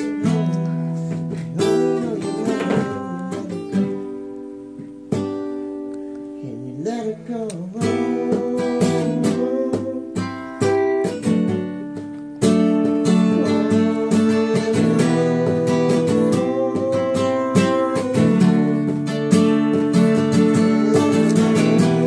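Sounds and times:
acoustic guitar pop song: 0.0 - 22.0.

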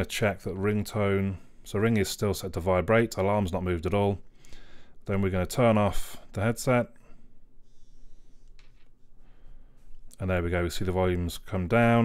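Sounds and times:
handling of phone and headset: 7.6 - 10.2.

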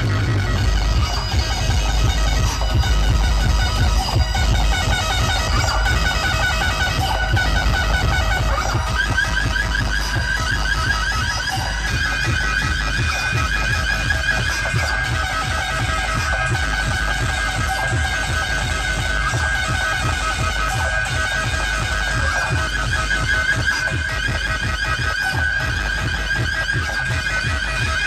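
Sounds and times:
loud dance music with heavy bass: 0.0 - 28.0.

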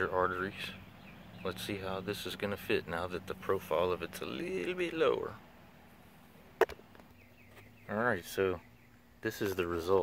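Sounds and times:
man speaking: 1.4 - 5.4, 9.2 - 10.0.

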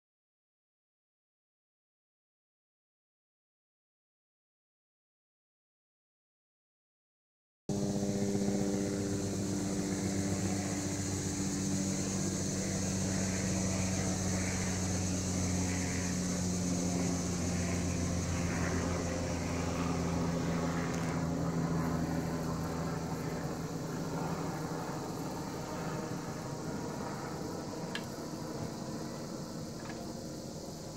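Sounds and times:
low motor hum: 7.7 - 30.2
insects buzzing: 7.7 - 30.9.

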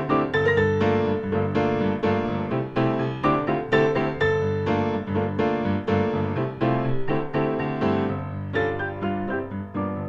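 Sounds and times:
piano music: 0.0 - 10.0.

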